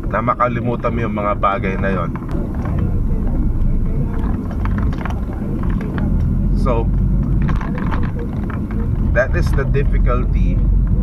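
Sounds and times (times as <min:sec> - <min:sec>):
engine and road rumble: 0:00.0 - 0:11.0
faint clicks and rattles: 0:00.9 - 0:11.0.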